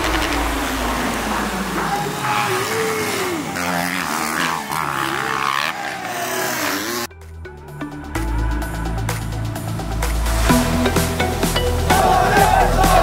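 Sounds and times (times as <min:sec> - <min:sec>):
dirt bike engines revving: 0:00.0 - 0:07.1, 0:11.0 - 0:13.0.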